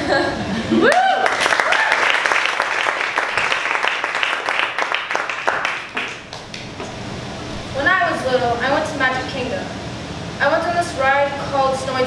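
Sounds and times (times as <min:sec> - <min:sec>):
audience applauding: 0:00.9 - 0:07.3.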